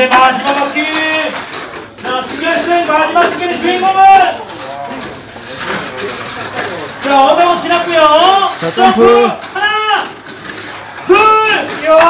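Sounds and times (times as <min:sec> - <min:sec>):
quiet chatter: 0:00.0 - 0:12.0
men calling out excitedly: 0:02.0 - 0:04.5, 0:07.0 - 0:10.2.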